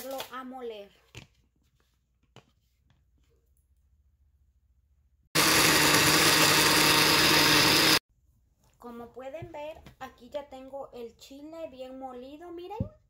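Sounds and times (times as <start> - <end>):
blender motor running: 5.4 - 8.0.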